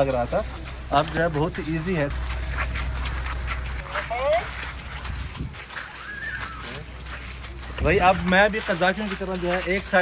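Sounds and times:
horse hooves on wet gravel: 0.0 - 10.0.

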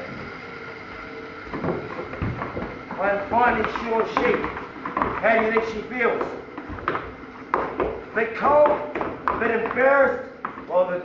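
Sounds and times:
sheep hooves scrabbling on wood: 1.5 - 10.8.

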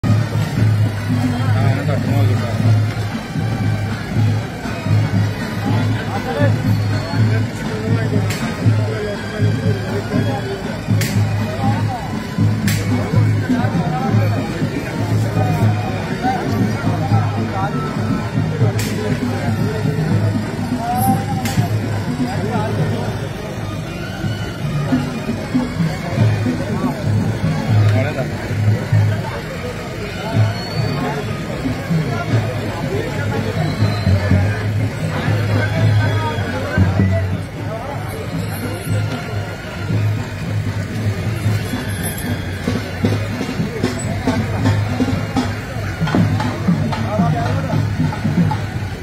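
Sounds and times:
music: 0.0 - 49.0
voices: 0.0 - 49.0.

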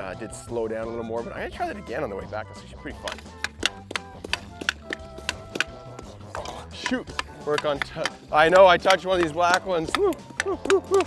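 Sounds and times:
background music: 0.0 - 11.0
hockey stick tapping pucks: 3.0 - 11.0.

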